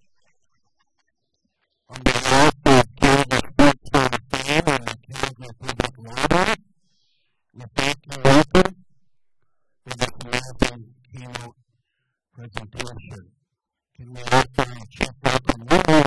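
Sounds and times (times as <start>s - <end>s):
man speaking into microphone: 1.9s - 6.6s, 7.6s - 8.8s, 9.9s - 11.5s, 12.4s - 13.2s, 14.0s - 16.0s.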